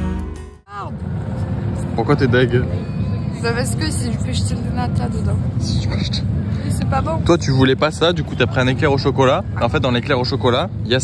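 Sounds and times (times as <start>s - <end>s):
street and traffic noise: 0.0s - 11.0s.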